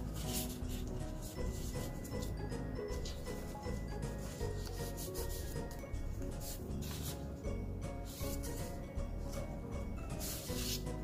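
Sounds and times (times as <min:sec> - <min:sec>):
paper rustling and pages turning: 0:00.0 - 0:02.4, 0:03.0 - 0:07.3, 0:10.2 - 0:11.0
soft background music: 0:00.0 - 0:11.0.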